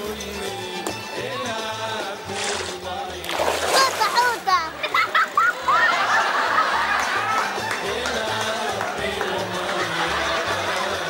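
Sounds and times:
background music with low beat: 0:00.0 - 0:03.8
splash in water: 0:02.4 - 0:04.4.

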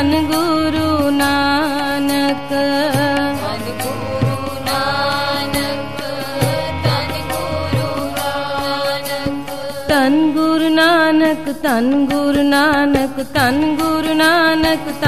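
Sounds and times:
harmonium playing held chords: 0:00.0 - 0:15.0
person singing: 0:00.0 - 0:15.0
tabla strokes: 0:00.0 - 0:15.0.

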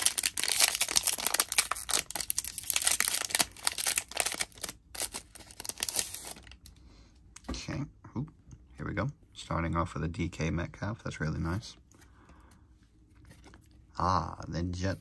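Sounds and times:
foil pack tearing and crinkling: 0:00.0 - 0:06.6.

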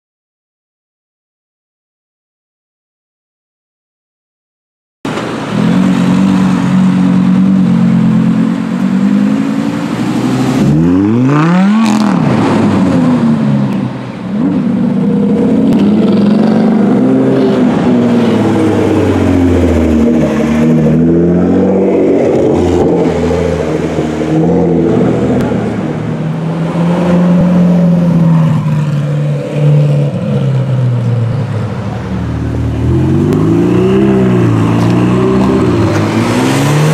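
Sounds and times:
sports car engines revving: 0:05.1 - 0:36.9.

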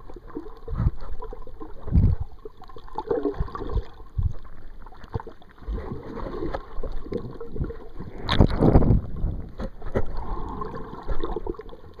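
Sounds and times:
underwater sloshing and gurgling: 0:00.0 - 0:12.0.

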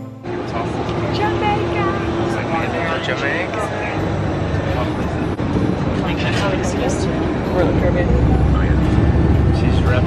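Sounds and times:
bus engine and road noise: 0:00.0 - 0:10.0
voices: 0:00.3 - 0:10.0.

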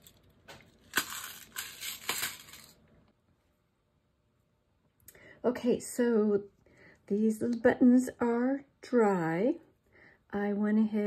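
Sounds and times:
metal brads rattling in plastic box: 0:00.9 - 0:02.8.

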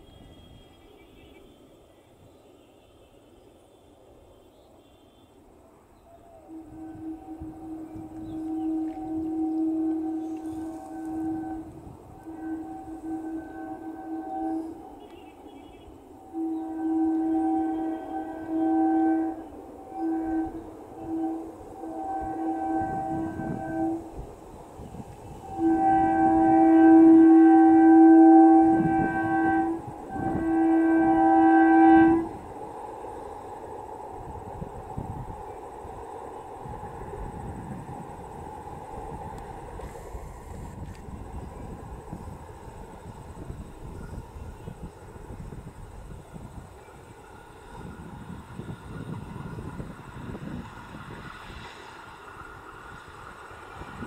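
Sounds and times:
train horn blasts: 0:00.0 - 0:01.7, 0:06.1 - 0:54.0
train rumbling on track: 0:00.0 - 0:54.0.

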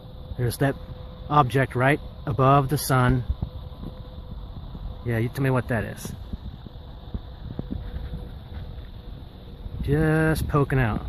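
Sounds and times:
low uneven rumble: 0:00.0 - 0:11.0.

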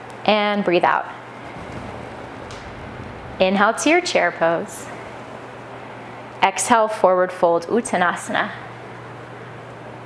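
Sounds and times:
low hum: 0:01.2 - 0:06.8.

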